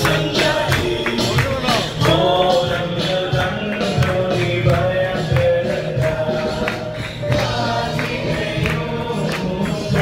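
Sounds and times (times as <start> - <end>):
group singing gospel song: 0.0 - 10.0
steady percussive beat: 0.0 - 10.0.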